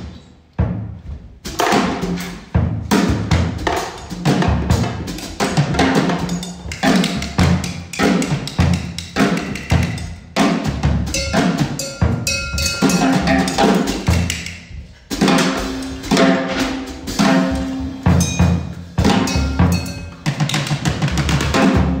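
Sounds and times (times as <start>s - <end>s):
drum kit and percussion groove: 0.0s - 22.0s
held higher tones: 11.2s - 13.8s, 19.2s - 20.3s.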